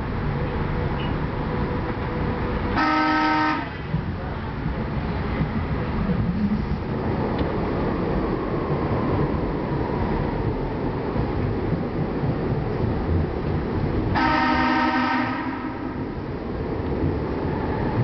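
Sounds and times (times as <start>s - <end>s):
train rumbling on rails: 0.0s - 18.0s
train horn blast: 2.7s - 3.9s, 14.1s - 16.0s.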